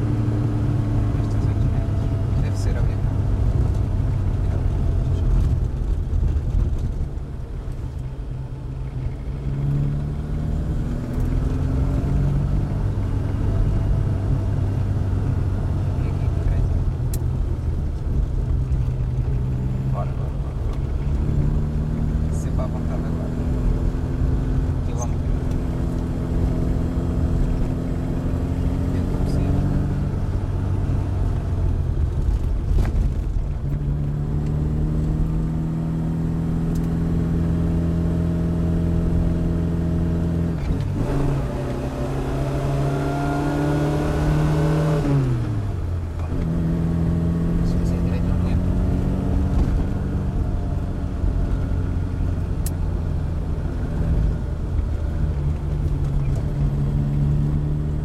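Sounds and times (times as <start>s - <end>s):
car engine revving under load: 0.0s - 58.0s.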